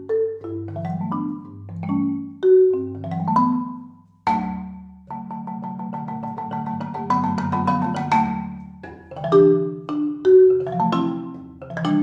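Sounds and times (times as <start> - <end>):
marimba played with mallets: 0.0 - 12.0.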